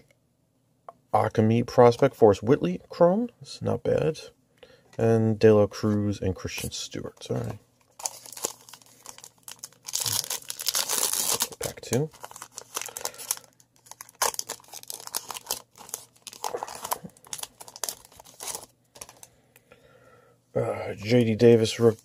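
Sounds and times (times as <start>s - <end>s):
foil wrapper tearing and crinkling: 7.9s - 19.3s.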